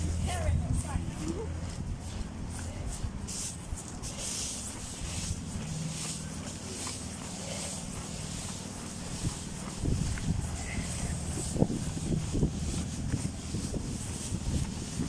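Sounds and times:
blower fan humming: 0:00.0 - 0:15.0
inflated fabric rustling: 0:00.0 - 0:15.0.

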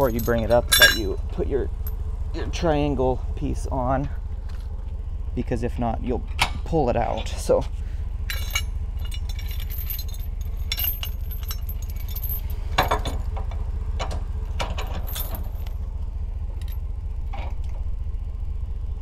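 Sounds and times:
metal chains clinking and jangling: 0:00.0 - 0:01.2, 0:08.2 - 0:13.2, 0:14.6 - 0:15.7
low hum: 0:00.0 - 0:19.0.

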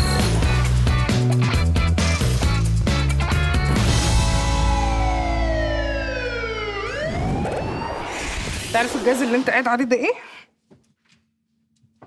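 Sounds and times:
logo sting: 0:03.7 - 0:09.3
siren-like sliding tone: 0:04.4 - 0:09.6.

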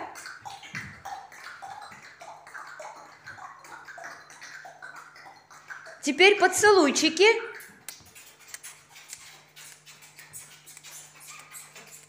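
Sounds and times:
children clicking tongues: 0:07.4 - 0:12.0.

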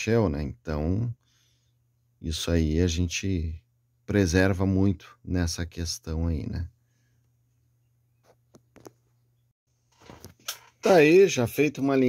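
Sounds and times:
man's voice: 0:10.8 - 0:12.0.

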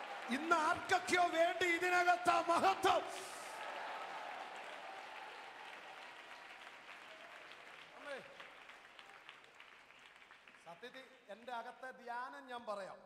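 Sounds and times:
congregation applauding: 0:00.0 - 0:11.6.

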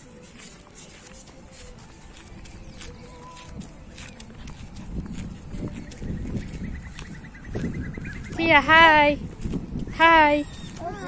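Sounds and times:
footsteps on a road: 0:00.0 - 0:11.0.

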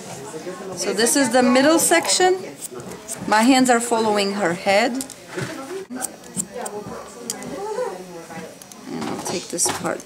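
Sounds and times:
quiet talk: 0:00.0 - 0:10.0.

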